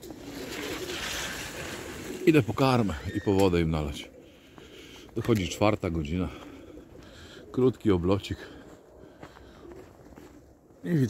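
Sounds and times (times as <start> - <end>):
steady rustling noise: 0.0 - 3.0
pigeons cooing: 0.0 - 11.0.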